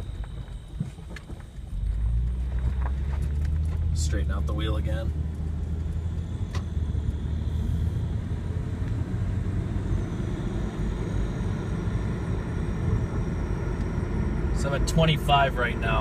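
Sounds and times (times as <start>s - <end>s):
road rumble inside car: 0.0s - 16.0s.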